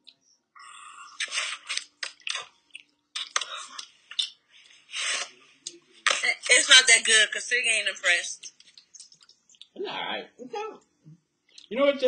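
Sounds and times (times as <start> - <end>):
chewing and crunching candy: 0.6 - 4.4.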